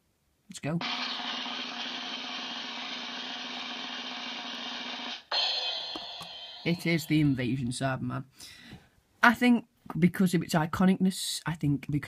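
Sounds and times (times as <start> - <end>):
drum roll: 0.8 - 7.5
cymbal crash ringing: 4.9 - 7.4.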